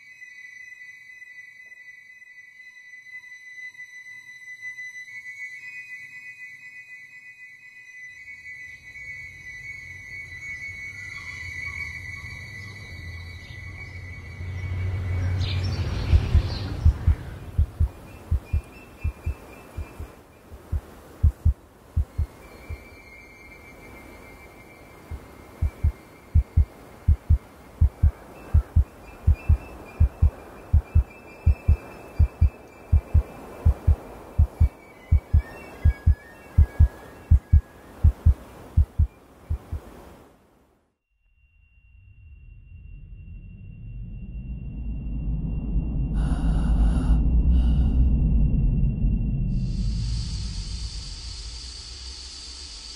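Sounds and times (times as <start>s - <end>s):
low hum: 14.2s - 22.8s, 25.0s - 40.1s, 42.0s - 52.9s
heartbeat thumps: 16.0s - 22.3s, 25.1s - 39.9s.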